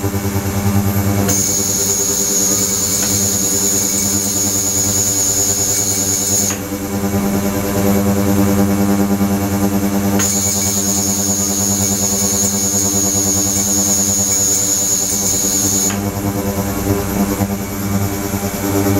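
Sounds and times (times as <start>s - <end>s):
ultrasonic tank buzzing hum: 0.0s - 18.9s
high-pitched whine: 0.9s - 18.9s.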